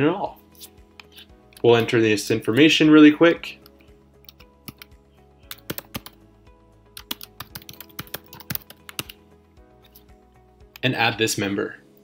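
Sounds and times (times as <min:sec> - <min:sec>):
typing on computer keyboard: 0:04.2 - 0:04.9, 0:05.5 - 0:06.2, 0:07.0 - 0:09.2.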